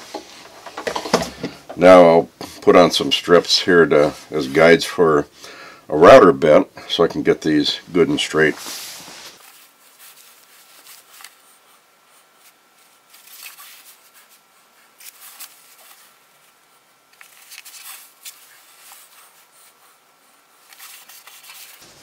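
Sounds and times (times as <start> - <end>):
tape rustling: 15.0 - 16.2, 17.1 - 19.4, 20.6 - 22.0.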